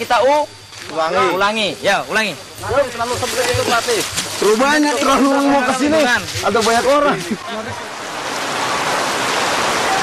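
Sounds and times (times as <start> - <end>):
rushing water: 3.0 - 10.0.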